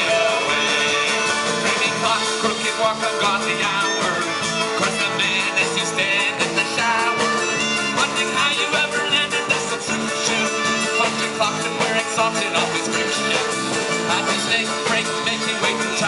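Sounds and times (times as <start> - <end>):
acoustic guitar: 0.0 - 16.0
drum kit: 0.0 - 16.0
electric bass: 0.0 - 16.0
fiddle: 0.0 - 16.0.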